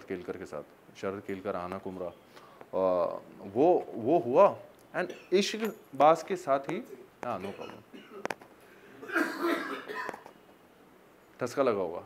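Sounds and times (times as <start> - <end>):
man coughing: 7.4 - 8.3, 9.0 - 10.2.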